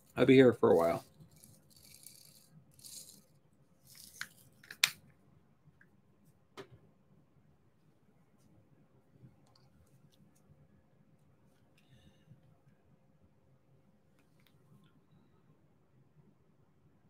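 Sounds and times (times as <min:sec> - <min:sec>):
plastic beads rattling in a tray: 0:00.0 - 0:04.8.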